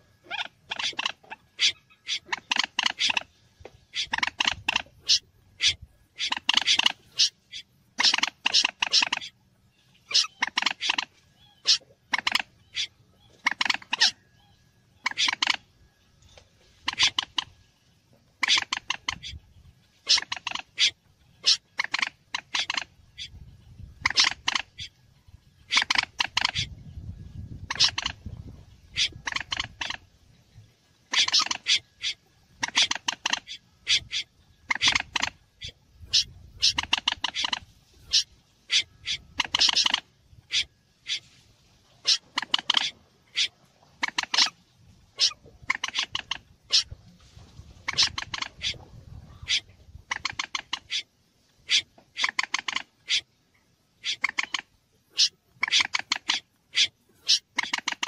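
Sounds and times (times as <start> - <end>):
sharp bird calls: 0.0 - 47.0, 47.7 - 53.4, 54.0 - 58.0.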